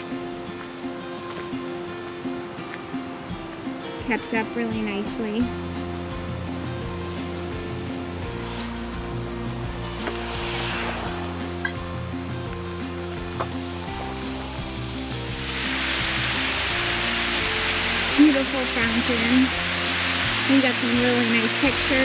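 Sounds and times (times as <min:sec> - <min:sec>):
slow sustained music chords: 0:00.0 - 0:22.0
fountain water splashing: 0:08.4 - 0:22.0.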